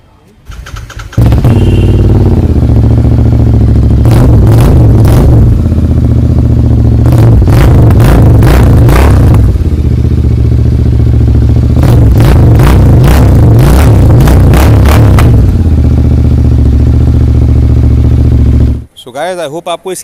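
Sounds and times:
motorcycle engine revving: 0.5s - 18.9s.

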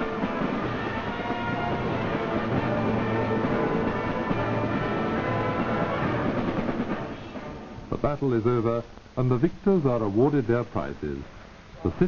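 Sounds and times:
concert band music: 0.0s - 8.1s.

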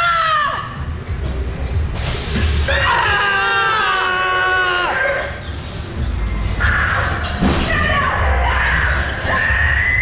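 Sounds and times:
burst of hiss: 2.0s - 2.9s
held scream: 2.4s - 5.2s.

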